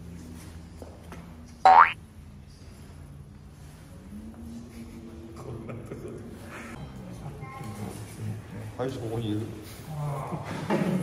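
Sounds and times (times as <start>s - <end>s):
cartoon boing sound effect: 1.7s - 2.0s.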